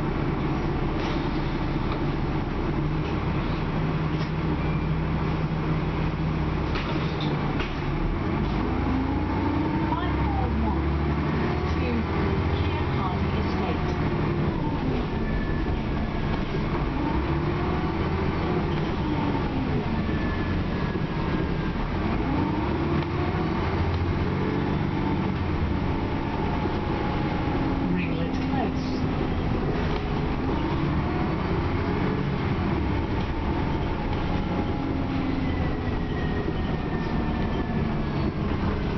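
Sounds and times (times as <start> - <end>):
bus engine rising and falling: 0.0 - 38.9
road rumble: 0.0 - 38.9.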